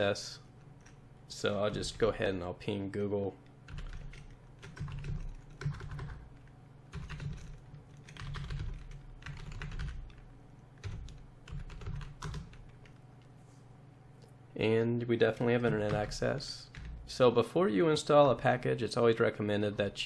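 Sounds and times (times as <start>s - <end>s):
typing on computer keyboard: 3.7s - 10.2s, 10.8s - 13.0s, 15.7s - 17.0s.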